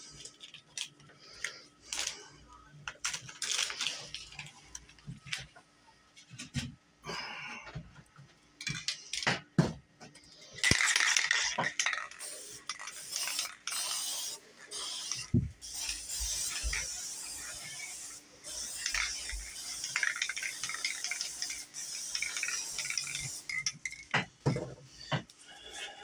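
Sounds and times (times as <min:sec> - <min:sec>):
spray paint can hissing: 0:10.6 - 0:24.0.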